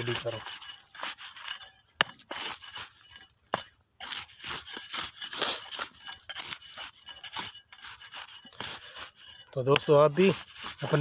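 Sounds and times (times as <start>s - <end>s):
hoe scraping and chopping soil: 0.0s - 11.0s.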